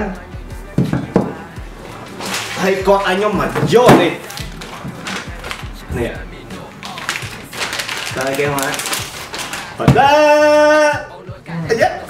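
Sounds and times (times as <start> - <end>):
wordless vocal sound: 0.0 - 12.0
plastic bag rustling: 1.8 - 10.1.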